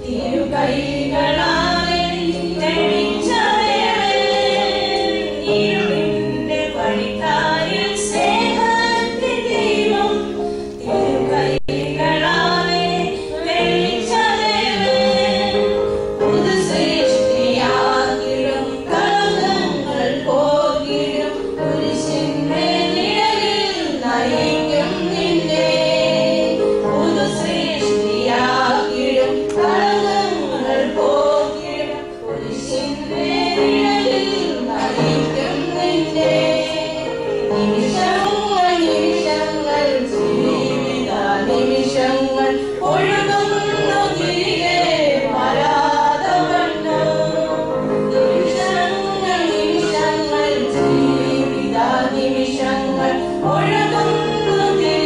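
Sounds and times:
steady held notes: 0.0 - 55.0
women singing a hymn: 0.0 - 55.0.

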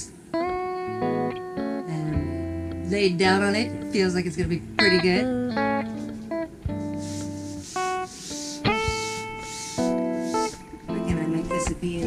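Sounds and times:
plucked guitar notes: 0.0 - 12.0.

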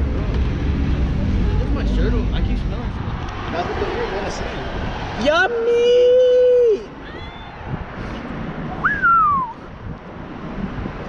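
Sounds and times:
street noise: 0.0 - 11.0
wind on microphone: 0.0 - 11.0
rising and falling whistle: 8.8 - 9.6.

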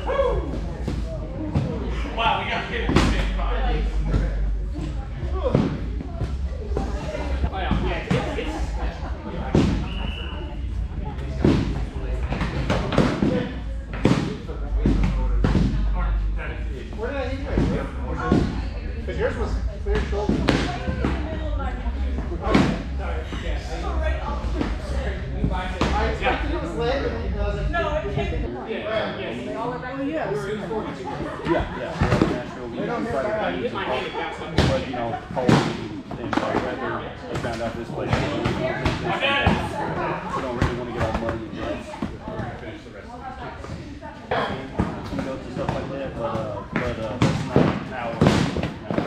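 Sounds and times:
indistinct voices talking: 0.0 - 49.0.

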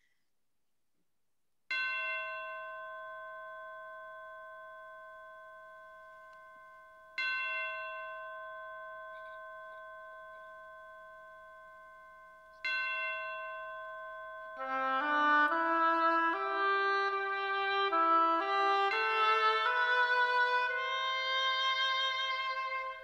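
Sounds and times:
bell ringing: 1.7 - 15.1, 18.8 - 23.0.

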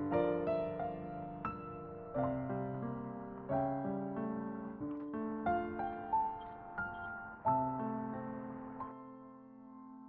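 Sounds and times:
soft piano chords: 0.0 - 10.0.

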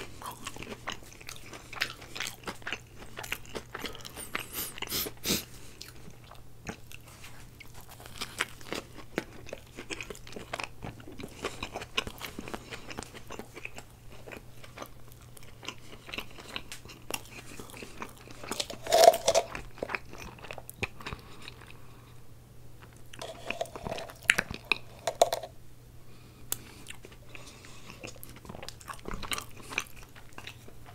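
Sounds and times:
food crunching: 0.0 - 21.8, 22.8 - 25.5, 26.5 - 30.9
chewing with wet mouth sounds: 0.0 - 21.9, 26.5 - 30.9.

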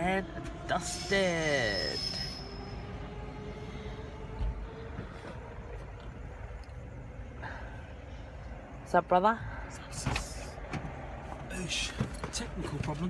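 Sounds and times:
train rumbling: 0.0 - 13.0.

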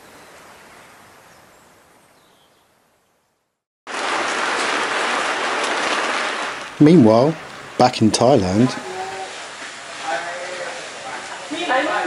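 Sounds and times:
rain hissing: 3.9 - 12.0.

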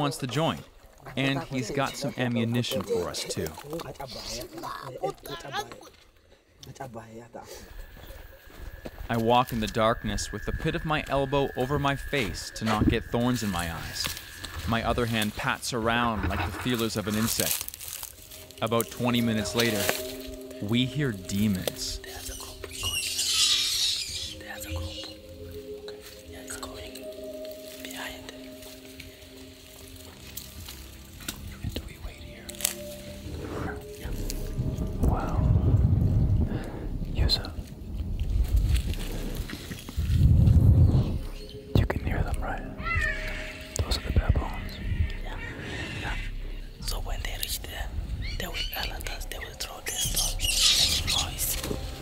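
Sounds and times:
low music drone: 7.5 - 52.0
person whispering: 18.7 - 23.4, 24.1 - 28.6, 31.4 - 32.7, 37.1 - 37.8, 41.8 - 42.8, 43.8 - 52.0
high squeaky sounds: 21.3 - 25.3, 49.9 - 51.9
loud breathy rumbles: 34.7 - 40.7.

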